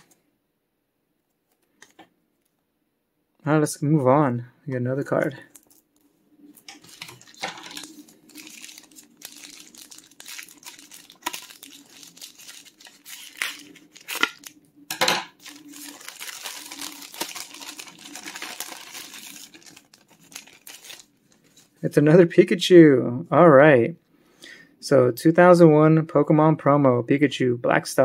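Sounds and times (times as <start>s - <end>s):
plastic bag crinkling: 6.6s - 14.6s, 15.3s - 21.8s.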